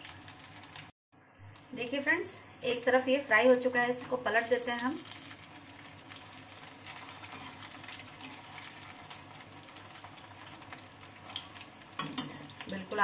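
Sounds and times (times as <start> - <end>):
food sizzling in hot oil: 0.0 - 13.0.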